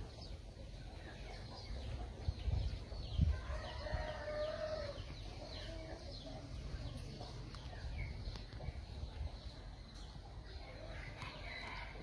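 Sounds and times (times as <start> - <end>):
small birds chirping: 0.0 - 12.0
rooster crowing: 3.3 - 5.0.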